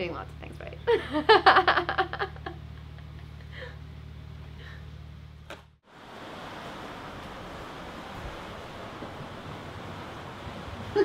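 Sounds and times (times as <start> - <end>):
low steady hum: 0.0 - 5.8
sea water rushing: 5.9 - 11.0.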